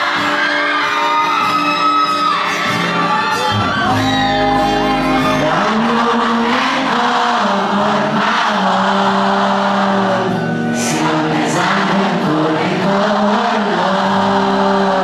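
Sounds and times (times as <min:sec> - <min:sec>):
crowd whooping and singing: 0:00.0 - 0:15.0
live band music: 0:01.6 - 0:05.6.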